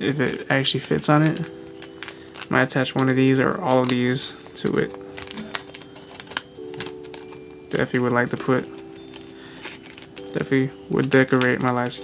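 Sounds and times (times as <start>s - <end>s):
soft background music: 0.0s - 12.0s
sticker sheets clicking and tapping: 0.2s - 12.0s.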